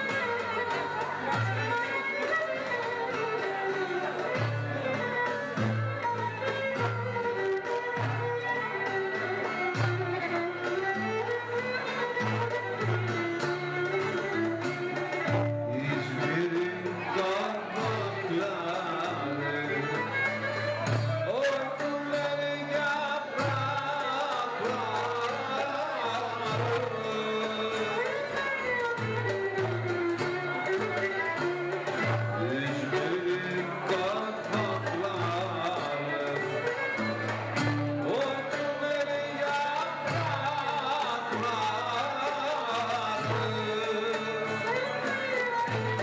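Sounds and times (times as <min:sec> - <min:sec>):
fiddle melody: 0:00.0 - 0:46.0
plucked lute: 0:00.0 - 0:46.0
man singing into microphone: 0:15.6 - 0:20.6, 0:21.2 - 0:28.6, 0:32.3 - 0:37.0, 0:38.0 - 0:45.5.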